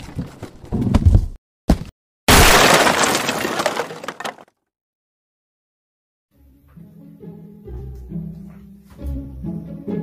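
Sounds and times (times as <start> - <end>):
falling debris clinks: 2.3 - 4.4
wooden crate smashing: 2.3 - 4.5.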